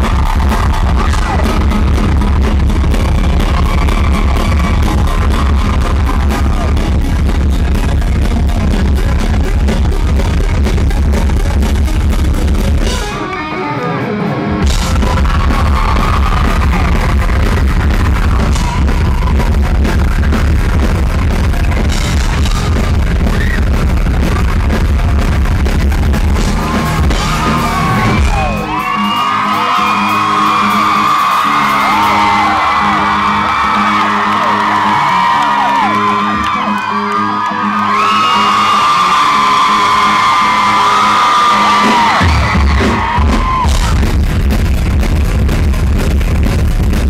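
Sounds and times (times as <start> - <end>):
crowd whooping and screaming: 0.0 - 11.8, 12.6 - 45.0
live rock band playing: 0.0 - 47.0.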